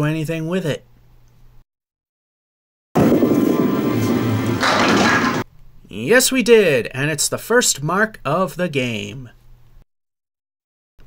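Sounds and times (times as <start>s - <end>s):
bowling pins clattering: 4.5s - 5.4s.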